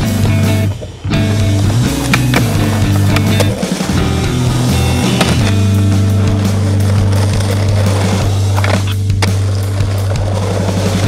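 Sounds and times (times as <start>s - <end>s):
background music: 0.0s - 11.0s
skateboard deck clacks: 0.0s - 11.0s
skateboard rolling: 0.0s - 11.0s.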